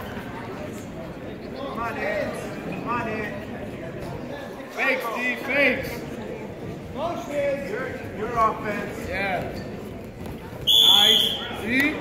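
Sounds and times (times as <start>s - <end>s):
referee whistle blast: 10.6s - 11.6s.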